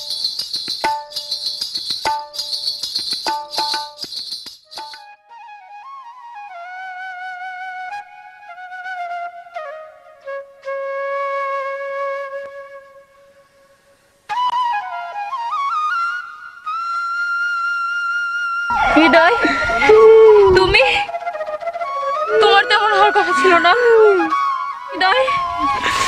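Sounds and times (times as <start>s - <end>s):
slow solo flute melody: 5.0s - 25.9s.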